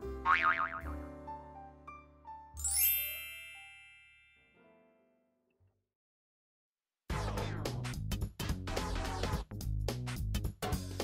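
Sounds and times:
bright bell-like ding: 2.6s - 4.6s
short soft chime notes: 2.6s - 4.8s.

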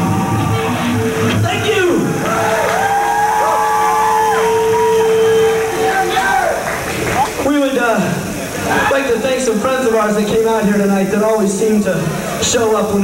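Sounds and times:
crowd cheering and whooping: 0.0s - 7.5s, 8.6s - 9.1s.

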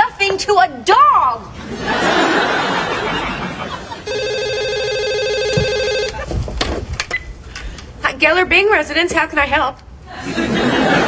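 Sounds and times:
cordless telephone ringing: 4.0s - 6.2s.

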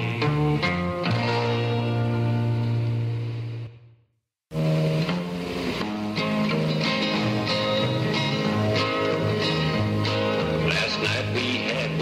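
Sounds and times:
low bass notes: 0.0s - 3.8s
guitar music: 0.0s - 12.0s.

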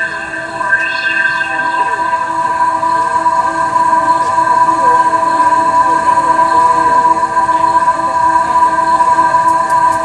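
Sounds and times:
held synthesizer chord: 0.0s - 8.1s
faint wavering notes: 0.0s - 10.0s.

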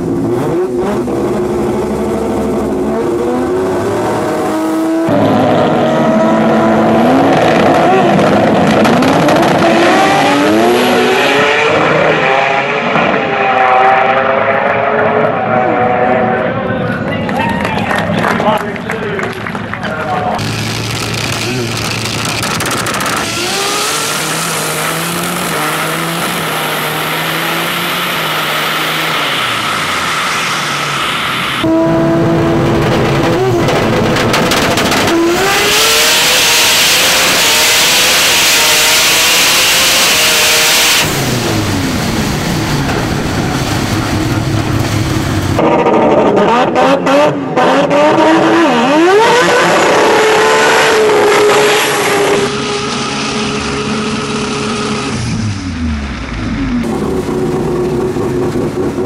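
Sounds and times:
rotary engine idling and revving: 0.0s - 16.8s, 20.1s - 59.0s.

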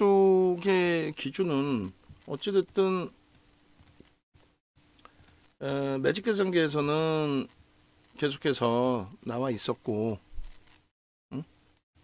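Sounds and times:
computer mouse clicks: 3.3s - 4.1s, 5.0s - 5.4s.

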